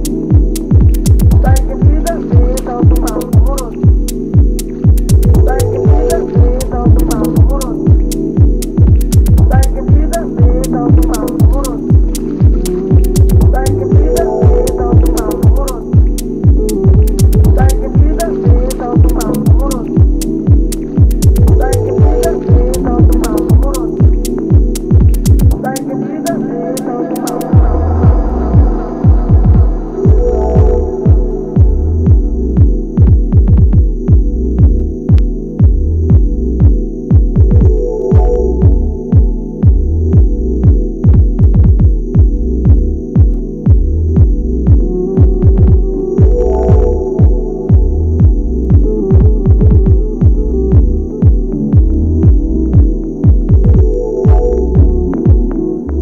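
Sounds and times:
steady kick drum: 0.0s - 25.8s, 27.2s - 56.0s
deep looping chords: 0.0s - 56.0s.

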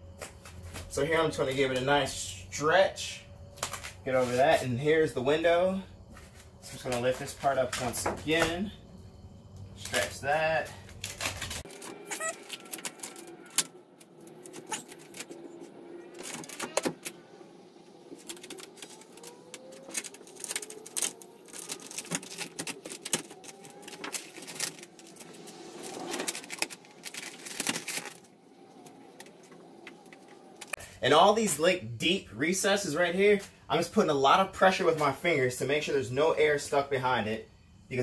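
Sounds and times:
vinyl film crinkling: 6.1s - 8.6s, 9.8s - 31.5s.

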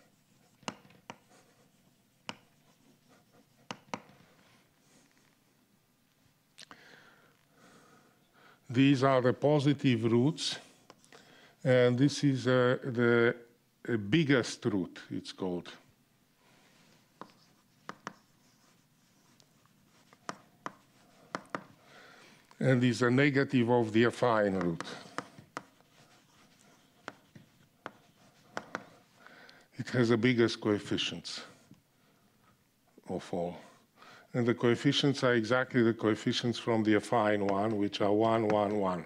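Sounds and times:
chalk tapping on blackboard: 0.0s - 4.2s, 17.2s - 21.8s, 24.4s - 29.0s, 37.2s - 39.0s
chalk scratching: 0.0s - 4.6s, 16.6s - 21.8s, 23.4s - 29.2s, 34.9s - 39.0s.

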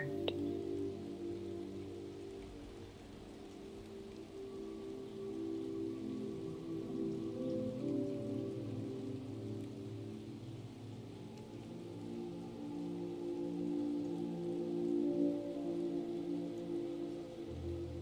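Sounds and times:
ambient meditation music: 0.0s - 18.0s
gentle rain: 0.0s - 18.0s.

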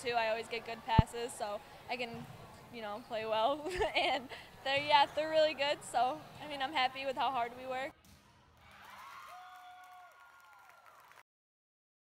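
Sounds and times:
faint crowd noise: 0.0s - 10.2s.

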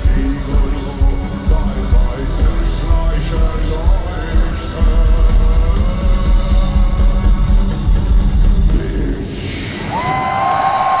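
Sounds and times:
crowd cheering and screaming: 9.4s - 11.0s.

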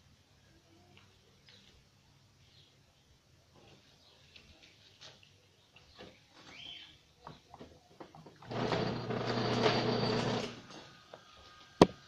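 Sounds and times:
homemade drill motor humming: 8.5s - 10.7s.

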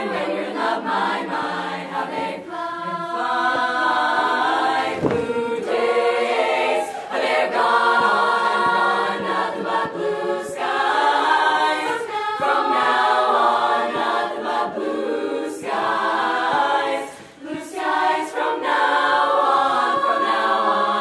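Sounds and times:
women's chorus singing a cappella: 0.0s - 21.0s.

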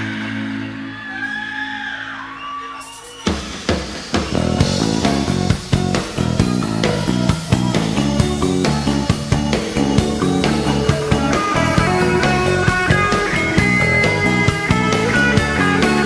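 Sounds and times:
rock band playing live: 3.6s - 16.0s
held guitar and keyboard notes: 4.2s - 16.0s.

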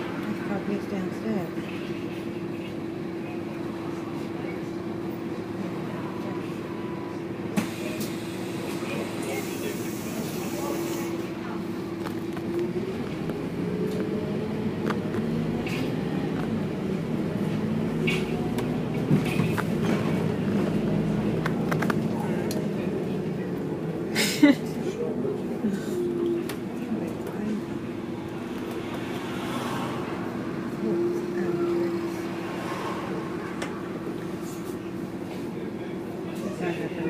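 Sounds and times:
bus engine hum: 0.0s - 37.0s.

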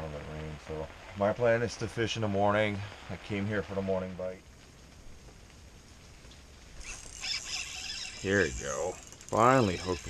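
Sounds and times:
rain on a hut: 0.0s - 10.0s
fishing reel whirring: 6.8s - 10.0s.

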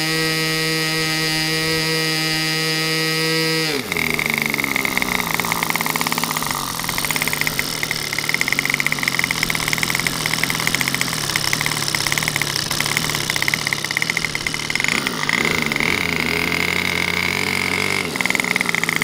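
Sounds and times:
model airplane engine idling: 0.0s - 19.0s.

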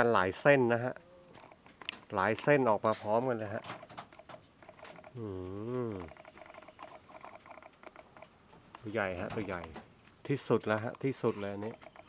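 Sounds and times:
faint fast ticking: 1.3s - 12.0s.

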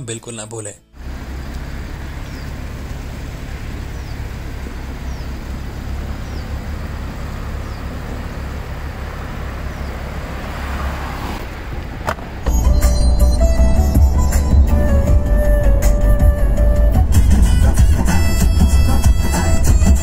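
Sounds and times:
traffic rumble: 0.0s - 20.0s
vehicle passing: 1.0s - 12.5s.

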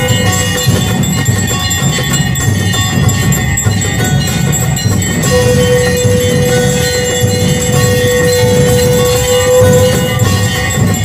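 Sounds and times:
bells ringing: 0.0s - 11.0s
jingling percussion: 0.0s - 11.0s
pulsing low rhythm: 0.0s - 11.0s.

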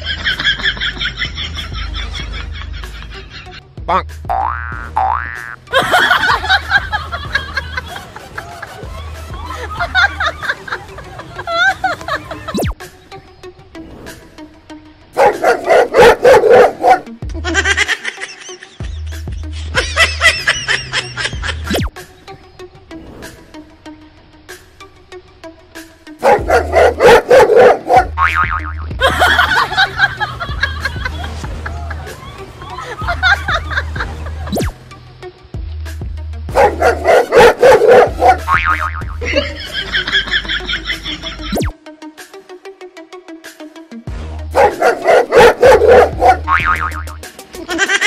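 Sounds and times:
background music: 0.0s - 48.0s
dog barking rapidly: 15.2s - 17.1s, 26.2s - 28.2s, 36.5s - 38.6s, 44.5s - 46.7s
wobbling comic sound effect: 34.5s - 34.8s, 38.4s - 39.2s.

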